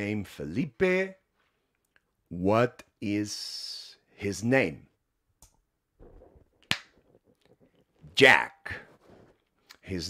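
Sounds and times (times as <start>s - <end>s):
finger snap: 6.7s - 6.9s.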